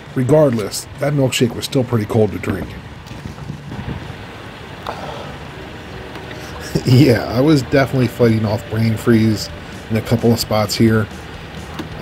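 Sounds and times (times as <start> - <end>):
wind buffeting microphone: 0.0 - 5.0.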